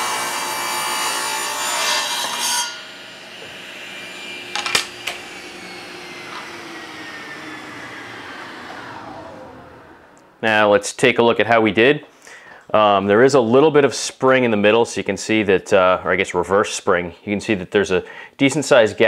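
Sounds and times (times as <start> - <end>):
table saw ripping wood: 0.0 - 10.7
saw blade spinning down: 0.0 - 10.9.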